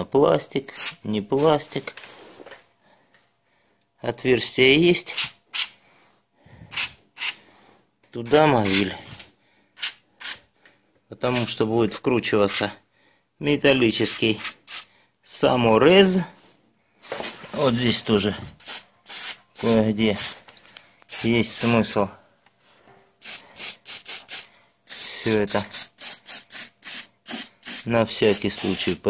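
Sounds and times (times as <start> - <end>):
aerosol spray hisses: 18.6 - 20.4, 21.1 - 21.7, 23.2 - 29.0.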